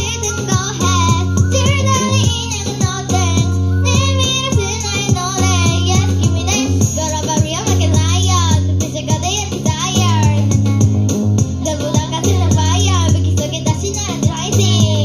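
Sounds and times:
girls singing into microphone: 0:00.0 - 0:07.6
backing track with bass line: 0:00.0 - 0:15.0.

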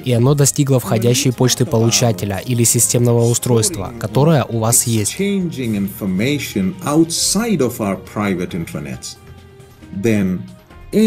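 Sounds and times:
man speaking: 0:00.0 - 0:09.2, 0:10.0 - 0:11.0
background music: 0:00.0 - 0:11.0.

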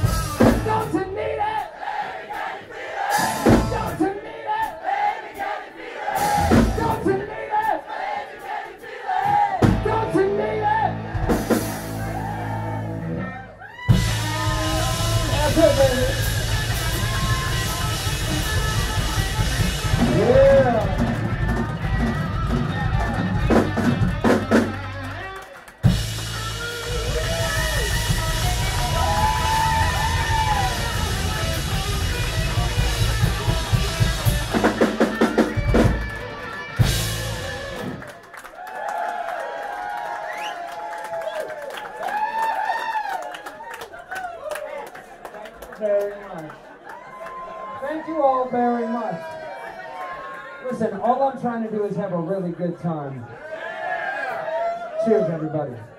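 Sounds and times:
live rock band playing loudly: 0:00.0 - 0:01.0, 0:03.1 - 0:04.0, 0:06.1 - 0:07.2, 0:09.3 - 0:38.1
crowd cheering and whooping: 0:06.0 - 0:07.1, 0:10.5 - 0:45.3, 0:46.4 - 0:50.7, 0:53.2 - 0:55.9.

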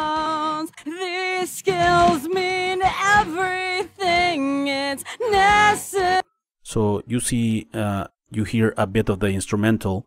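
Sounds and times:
person singing: 0:00.0 - 0:06.2.

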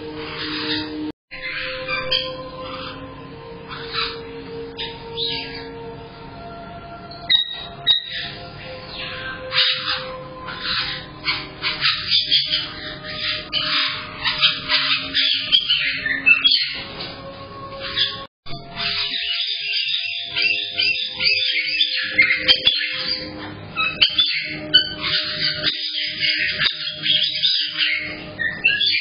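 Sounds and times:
background music: 0:00.0 - 0:29.0
parrots squawking and chirping: 0:00.0 - 0:29.0.

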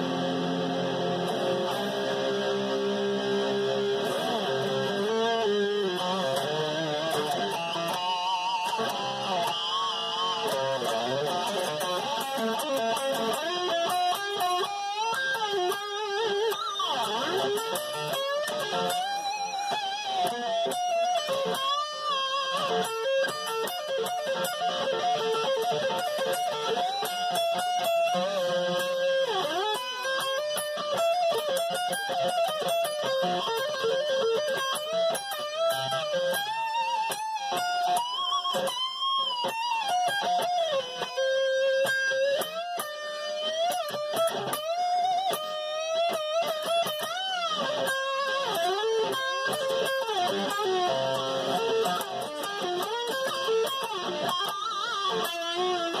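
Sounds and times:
electric guitar lead lines: 0:00.0 - 0:56.0.

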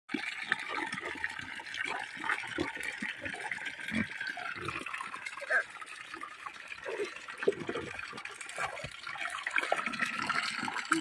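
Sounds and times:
water pouring into puddle: 0:00.1 - 0:11.0.

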